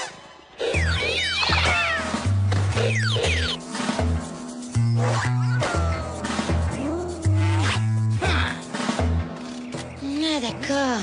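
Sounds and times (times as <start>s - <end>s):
cartoon music with bass line: 0.6s - 9.4s.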